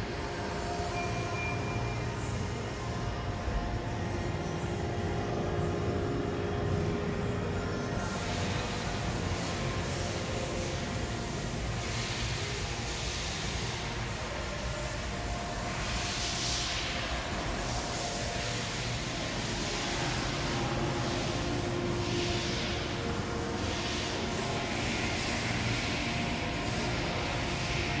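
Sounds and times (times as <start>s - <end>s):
mechanical rumble and hum: 0.0s - 28.0s
hiss: 8.0s - 28.0s.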